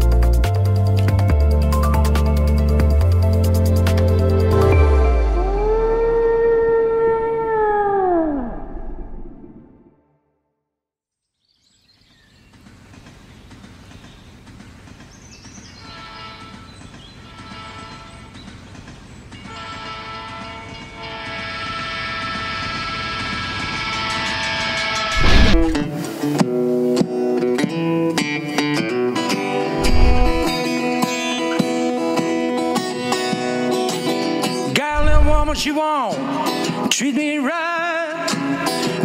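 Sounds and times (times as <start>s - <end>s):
pitched tone gliding down: 4.8s - 10.0s
loud hit: 25.1s - 25.9s, 29.8s - 30.6s, 35.0s - 35.6s
rushing rumble: 25.1s - 26.0s, 29.8s - 30.6s, 35.0s - 35.7s.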